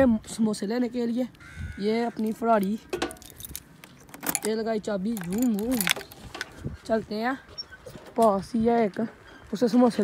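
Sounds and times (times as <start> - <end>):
keys jangling in a hand: 4.2 - 6.0
person talking: 4.3 - 6.1.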